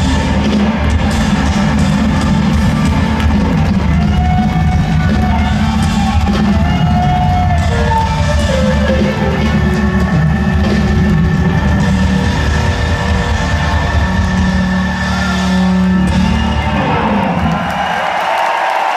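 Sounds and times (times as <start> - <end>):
electric guitar: 0.0 - 17.8
bass guitar: 0.0 - 17.9
drums: 0.0 - 18.9.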